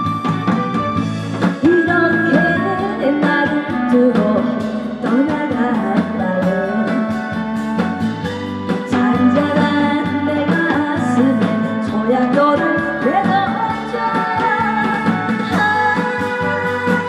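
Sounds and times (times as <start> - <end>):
backing track with steady beat: 0.0 - 17.0
woman singing into microphone: 1.6 - 7.6, 8.8 - 17.0.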